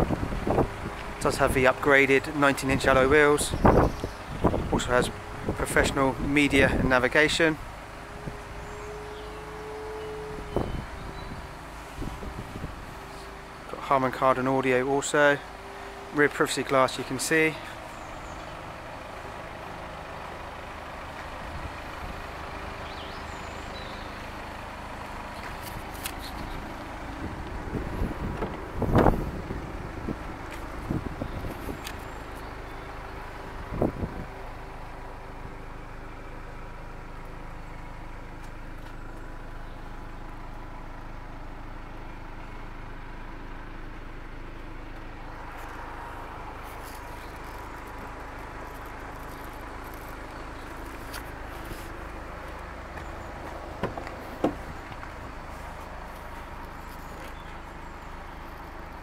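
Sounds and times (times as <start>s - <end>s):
vehicle hum: 0.0s - 59.0s
car door knocks and clatter: 28.2s - 29.1s, 52.9s - 55.1s.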